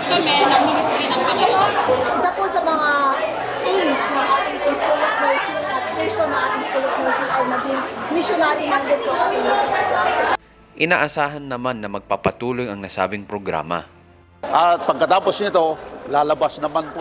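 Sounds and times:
chatter of many voices: 0.0s - 10.4s, 14.4s - 17.0s.

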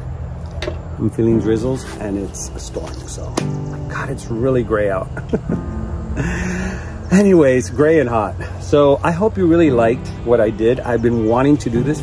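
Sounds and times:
soft background music: 0.5s - 12.0s
man laughing: 5.0s - 7.4s.

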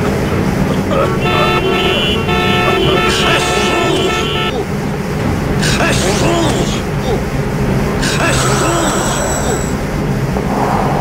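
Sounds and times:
low rumble of traffic: 0.0s - 11.0s
car horns honking: 0.6s - 5.0s.

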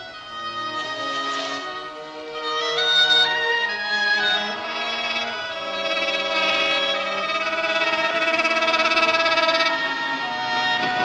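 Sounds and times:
orchestral music with held notes: 0.0s - 11.0s.

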